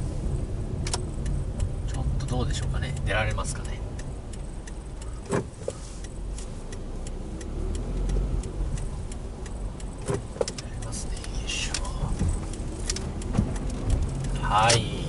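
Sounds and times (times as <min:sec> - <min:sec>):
car engine and road rumble: 0:00.0 - 0:15.0
turn signal ticking: 0:00.0 - 0:15.0.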